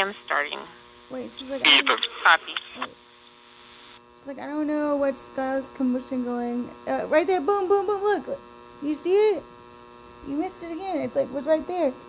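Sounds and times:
woman speaking: 0.0s - 2.5s, 4.2s - 9.4s, 10.2s - 12.0s
steady electrical hum: 0.0s - 12.0s.

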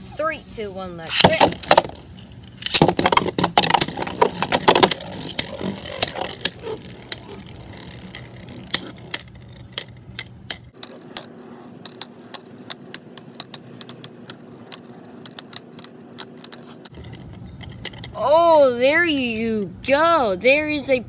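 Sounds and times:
spinning tops clacking together: 1.5s - 18.2s
spinning hum: 1.5s - 19.6s.

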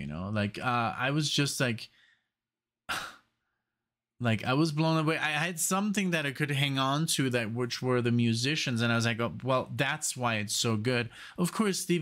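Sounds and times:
man sighing: 2.9s - 3.3s.

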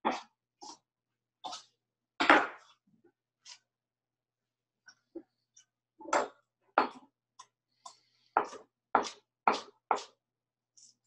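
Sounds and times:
knife chopping on wooden board: 8.4s - 10.1s.

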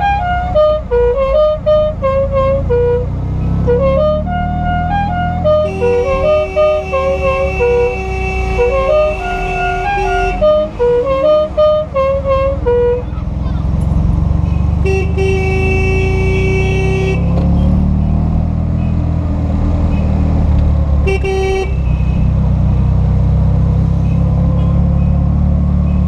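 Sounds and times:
car horn blast: 0.0s - 13.1s, 14.5s - 17.4s, 21.0s - 22.3s
musical car horn tune: 0.0s - 13.2s, 14.4s - 17.5s, 21.0s - 22.4s
car engine from inside cabin: 0.2s - 26.0s.

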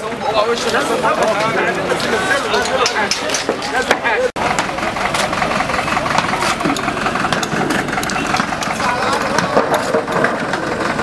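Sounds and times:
engine running steadily: 0.0s - 11.0s
people talking: 0.0s - 11.0s.

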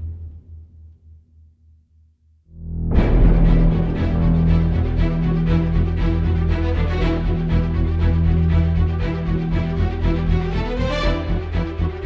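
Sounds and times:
dark trailer music: 2.5s - 12.0s
low synthesizer bass pulsing: 2.5s - 12.0s.

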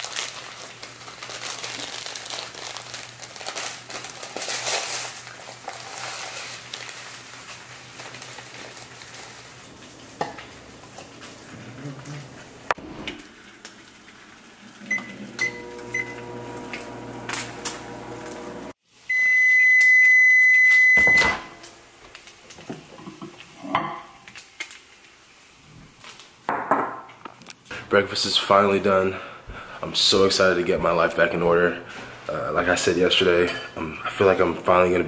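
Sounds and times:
packet rustling: 0.0s - 10.2s
microwave oven humming: 14.7s - 19.4s
long loud microwave beep: 14.9s - 16.3s, 19.1s - 21.6s
microwave keypad beeps: 19.1s - 21.6s.

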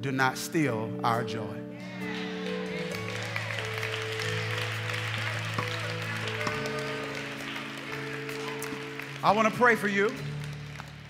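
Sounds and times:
soft music of sustained chords: 0.1s - 11.0s
congregation applauding: 1.8s - 11.0s.

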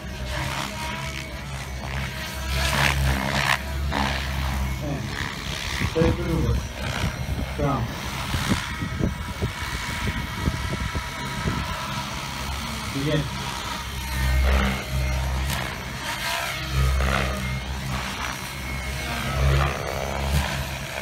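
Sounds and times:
model helicopter whine: 0.0s - 21.0s
people talking: 4.7s - 5.2s, 5.9s - 6.7s, 7.5s - 8.0s, 12.9s - 13.4s.

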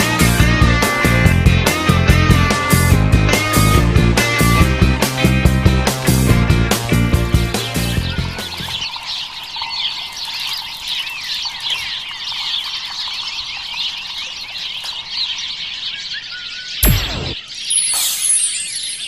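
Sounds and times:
song music: 0.0s - 8.5s, 16.8s - 17.4s
birds chirping: 0.0s - 19.0s.

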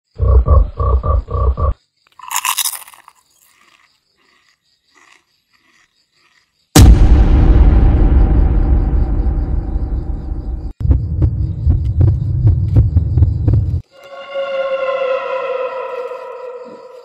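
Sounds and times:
loud boom with rumble: 6.8s - 13.2s
heavy low beats: 6.8s - 13.8s.

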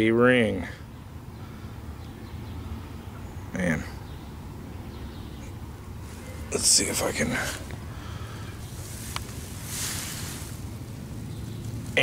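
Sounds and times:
handling rustle: 8.6s - 12.0s.

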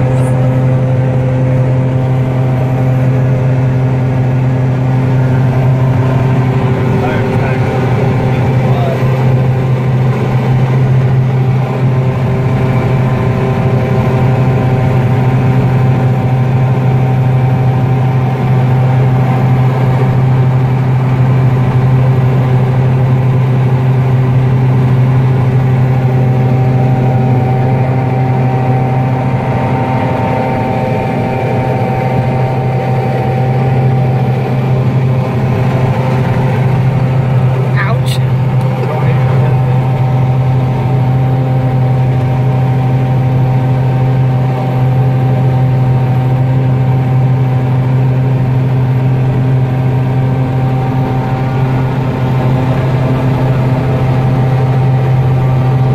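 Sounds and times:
combine harvester drone: 0.0s - 55.9s.

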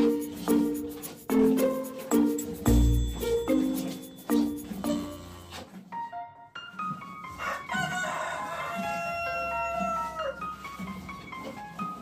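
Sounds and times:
background music with soft beat: 0.0s - 7.3s
rooster crowing: 7.3s - 10.5s.

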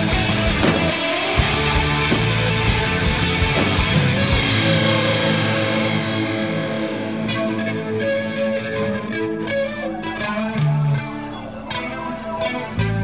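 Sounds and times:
bass: 0.0s - 13.0s
electric guitar line: 0.0s - 13.0s.

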